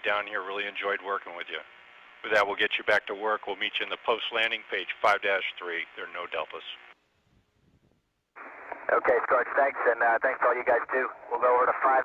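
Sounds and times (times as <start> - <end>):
radio static hiss: 0.0 - 7.0, 8.4 - 12.0
person speaking over radio: 8.9 - 12.0.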